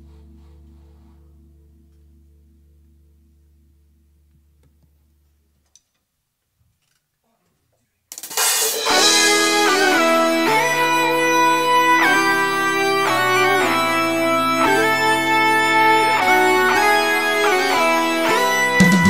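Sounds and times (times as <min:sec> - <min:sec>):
electric guitar chords: 0:00.0 - 0:04.6, 0:08.8 - 0:19.0
bass notes: 0:00.0 - 0:05.6, 0:08.9 - 0:19.0
cymbal crash: 0:08.2 - 0:12.1.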